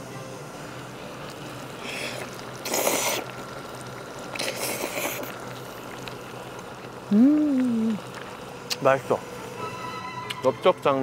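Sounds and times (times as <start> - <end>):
person slurping food: 1.8 - 3.3, 4.4 - 5.3.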